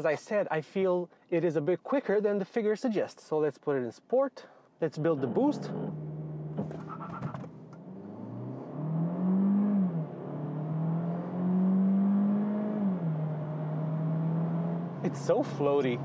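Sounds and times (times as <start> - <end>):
car engine accelerating: 5.2 - 16.0.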